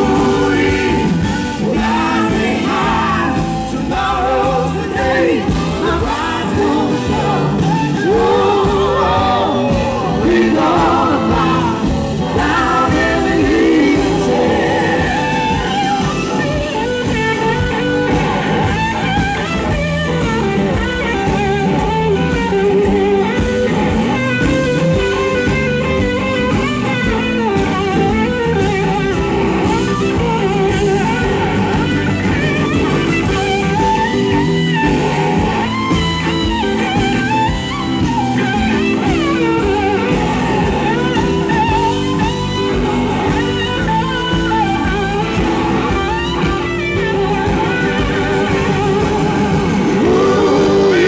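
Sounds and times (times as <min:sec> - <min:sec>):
bass: 0:00.0 - 0:51.0
drum kit: 0:00.0 - 0:51.0
electric guitar solo: 0:00.0 - 0:51.0.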